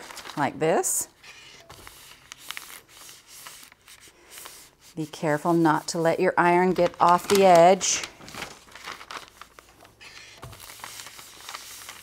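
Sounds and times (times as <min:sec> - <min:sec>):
paper rustling and scraping: 0:00.0 - 0:00.5, 0:01.2 - 0:12.0.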